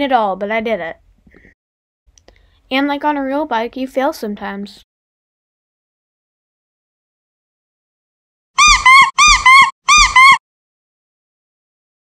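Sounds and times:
squeaky dog toy squeaking: 8.6 - 10.4.

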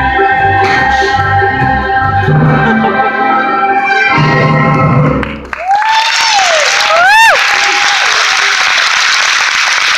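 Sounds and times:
audience applauding: 5.2 - 9.9
whooping cheers: 5.5 - 9.0.

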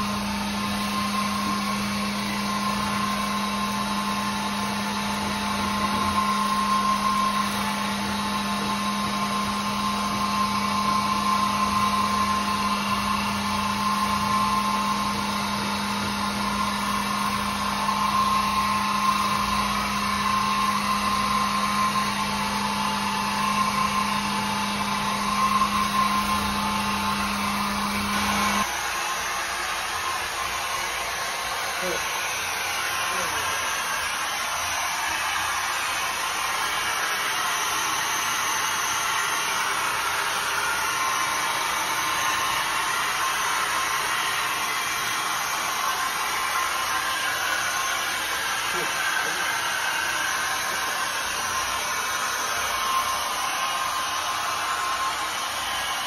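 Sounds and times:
floor scrubber motor drone: 0.0 - 56.0.

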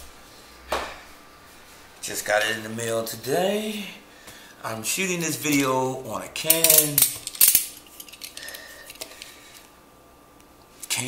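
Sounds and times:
faint handling sounds: 6.5 - 9.8.

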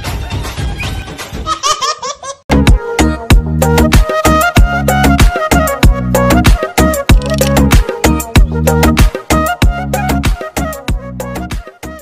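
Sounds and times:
high-pitched laughter: 0.8 - 2.5
loud music with bass and drums: 2.5 - 12.0.

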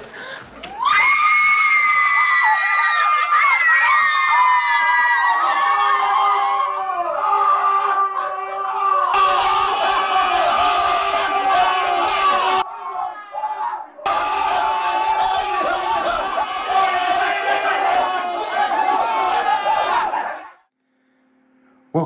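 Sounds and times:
women screaming with excitement: 0.7 - 7.2.

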